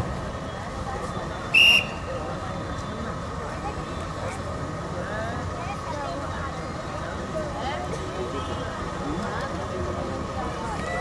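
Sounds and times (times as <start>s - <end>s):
murmur of crowd voices: 0.0s - 11.0s
referee's whistle blast: 1.5s - 2.1s.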